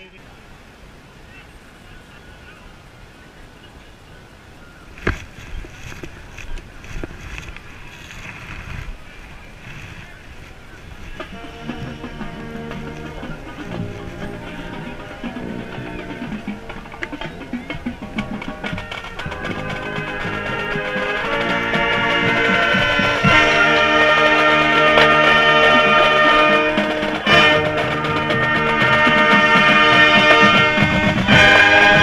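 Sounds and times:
marching band brass and percussion: 0:09.7 - 0:32.0.

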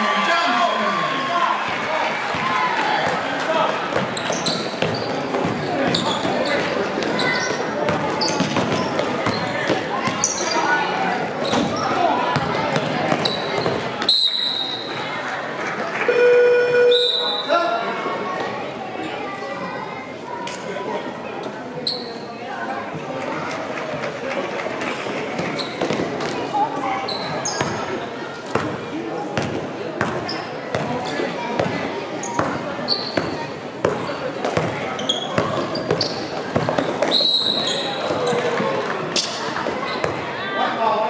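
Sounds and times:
players and spectators voices: 0:00.0 - 0:41.0
sneaker squeaks: 0:04.0 - 0:12.0, 0:13.1 - 0:15.0, 0:16.1 - 0:17.6, 0:21.4 - 0:22.4, 0:25.4 - 0:26.1, 0:26.8 - 0:28.7, 0:29.4 - 0:34.0, 0:34.6 - 0:40.2
basketball bouncing on court: 0:07.4 - 0:10.3, 0:29.4 - 0:31.0, 0:32.4 - 0:37.2
referee's whistle: 0:14.0 - 0:14.9, 0:16.1 - 0:17.6, 0:37.1 - 0:38.0
scoreboard horn blast: 0:16.1 - 0:17.1.

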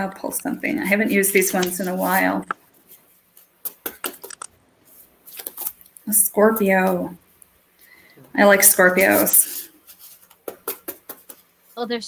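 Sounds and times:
woman speaking: 0:00.0 - 0:02.6, 0:06.1 - 0:07.2, 0:08.3 - 0:09.7
cards being shuffled: 0:01.5 - 0:04.5, 0:05.3 - 0:05.9.

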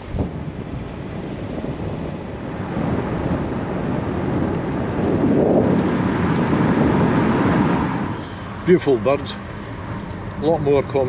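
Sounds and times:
car rumble: 0:00.0 - 0:11.0
wind rushing over microphone: 0:00.0 - 0:11.0.

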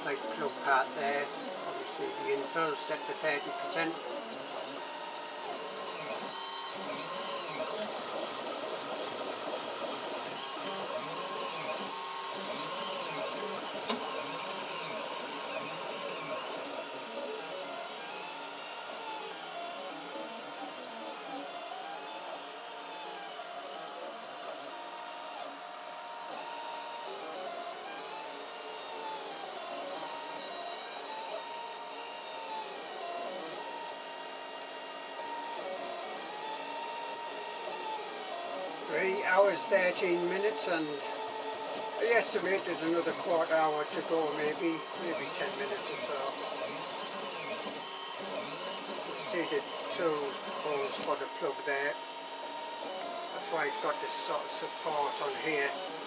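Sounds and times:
printer stepper motors whining: 0:00.0 - 0:56.0.

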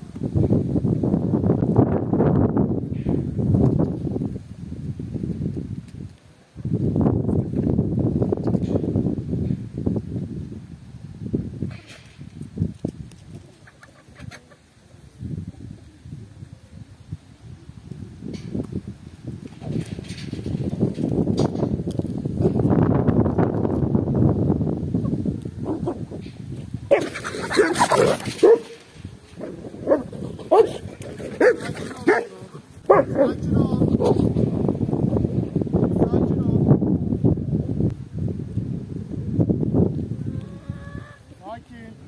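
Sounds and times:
chickens clucking: 0:13.3 - 0:15.0, 0:40.2 - 0:41.2
low rustling: 0:25.6 - 0:35.6
dog barking high-pitched: 0:28.4 - 0:28.8, 0:29.8 - 0:30.8, 0:31.4 - 0:32.3, 0:32.9 - 0:33.3.

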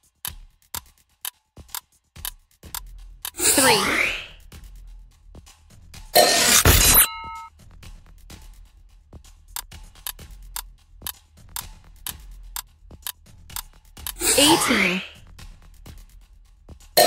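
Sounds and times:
steady ticking: 0:00.0 - 0:03.4, 0:07.1 - 0:14.5, 0:15.1 - 0:17.0
short chime: 0:06.2 - 0:07.5.

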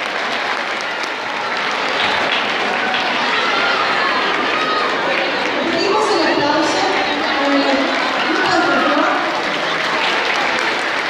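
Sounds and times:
audience applauding: 0:00.0 - 0:11.0
voices: 0:01.6 - 0:11.0.

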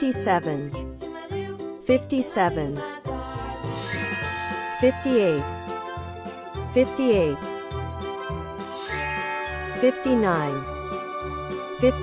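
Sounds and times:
children's music with steady beat: 0:00.0 - 0:12.0
tinkling chime with sparkly shimmer: 0:03.6 - 0:05.8, 0:08.6 - 0:10.8.

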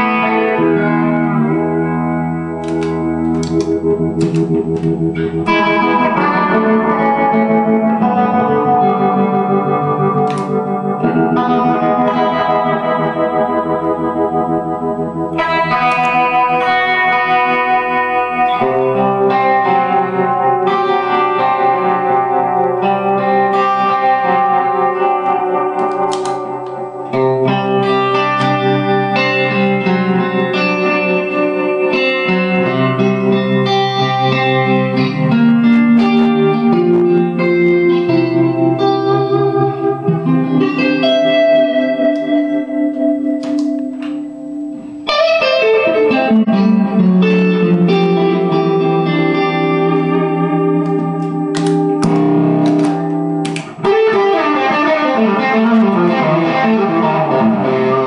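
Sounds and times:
clean electric guitar chords: 0:00.0 - 0:58.0.

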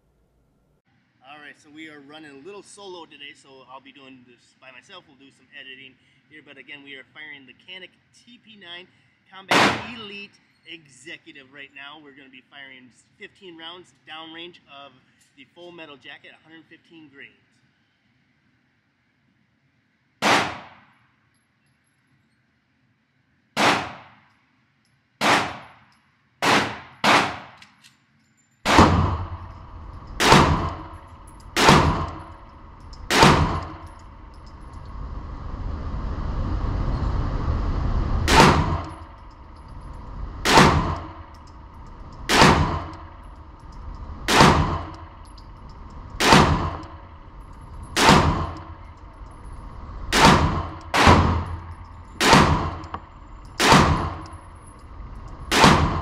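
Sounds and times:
pistol shots ringing indoors: 0:09.5 - 0:10.0, 0:20.2 - 0:21.0, 0:23.6 - 0:24.3, 0:25.2 - 0:25.8, 0:26.4 - 0:27.8, 0:28.7 - 0:29.6, 0:30.2 - 0:34.0, 0:42.3 - 0:43.2, 0:46.2 - 0:47.2, 0:48.0 - 0:49.0, 0:52.2 - 0:54.8, 0:55.5 - 0:56.0.

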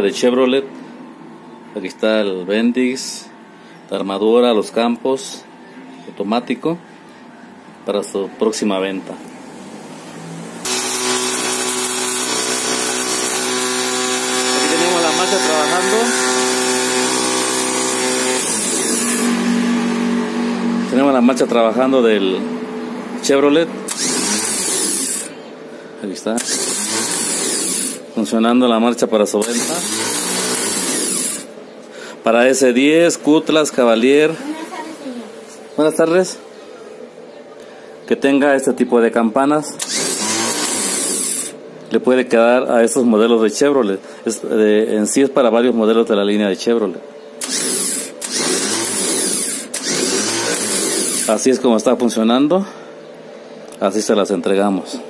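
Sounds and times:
starter motor whirring: 0:10.6 - 0:22.0, 0:23.3 - 0:25.4, 0:26.4 - 0:28.1, 0:29.4 - 0:31.6, 0:39.8 - 0:41.6, 0:47.4 - 0:51.6.

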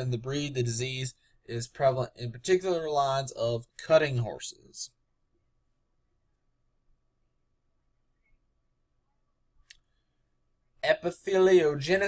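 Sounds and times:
man speaking: 0:00.0 - 0:05.0, 0:10.8 - 0:12.0.

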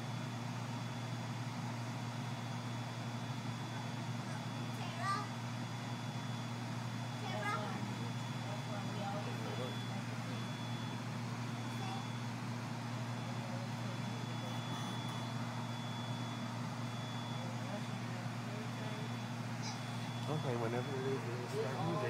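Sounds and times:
low equipment hum: 0:00.0 - 0:22.0.

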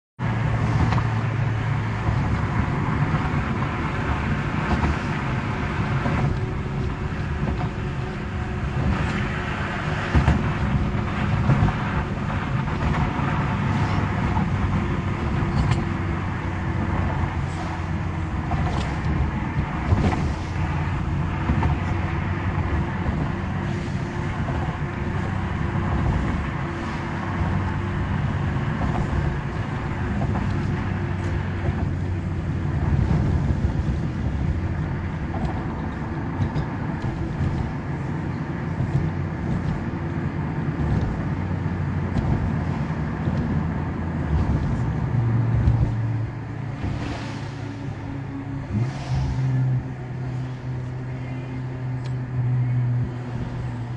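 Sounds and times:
car engine hum: 0:00.2 - 0:53.9
tyre rumble: 0:24.3 - 0:49.9.

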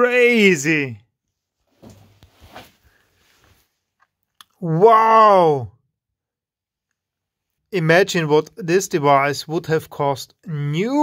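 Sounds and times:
faint handling knocks and rustles: 0:01.6 - 0:04.0.

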